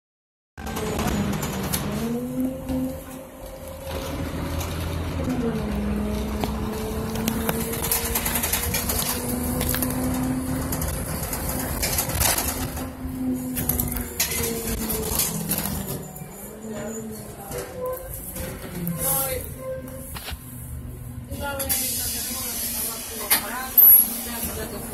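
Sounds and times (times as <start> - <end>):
bus drivetrain whining hum: 0.6 - 24.9
bus interior rattles: 0.6 - 24.9.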